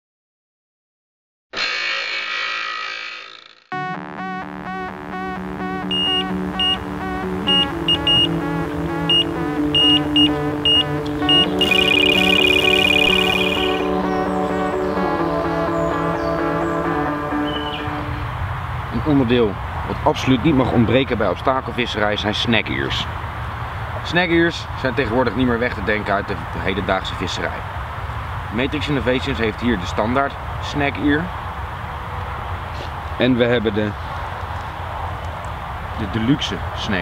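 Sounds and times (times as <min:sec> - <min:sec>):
intro music with sustained chords: 0:03.8 - 0:19.0
sustained high buzzing tone: 0:05.4 - 0:14.2
short high beeps: 0:05.9 - 0:06.8, 0:07.4 - 0:08.4, 0:09.1 - 0:13.9.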